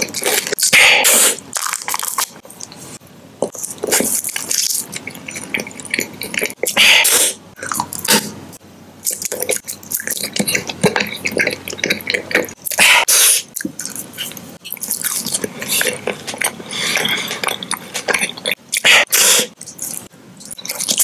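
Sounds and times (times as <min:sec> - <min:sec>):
chewing candy: 0:01.4 - 0:06.8, 0:09.0 - 0:12.8, 0:13.4 - 0:21.0.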